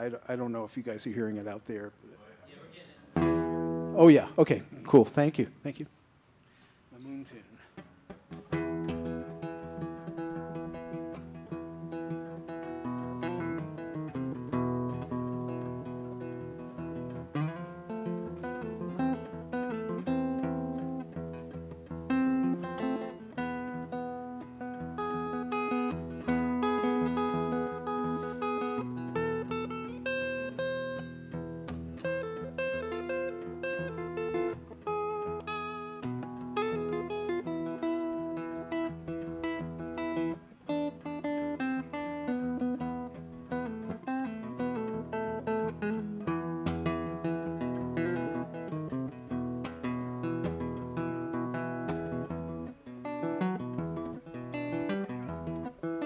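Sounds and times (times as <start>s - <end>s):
acoustic guitar picking: 3.1s - 4.6s, 7.6s - 56.0s.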